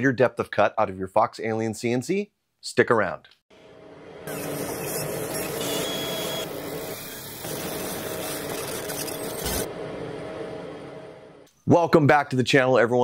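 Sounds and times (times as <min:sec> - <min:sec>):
machine noise with low hum: 0:08.5 - 0:11.4.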